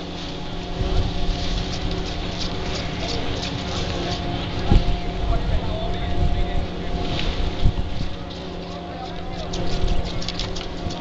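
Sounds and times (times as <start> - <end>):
chairlift machinery humming: 0.0 - 11.0
wind on microphone: 0.0 - 11.0.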